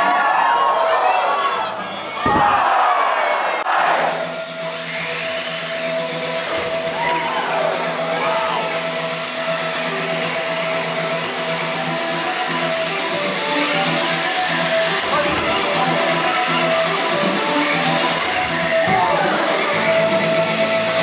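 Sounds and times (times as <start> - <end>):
background music: 0.0 - 21.0
robot electric motors whining: 3.7 - 21.0.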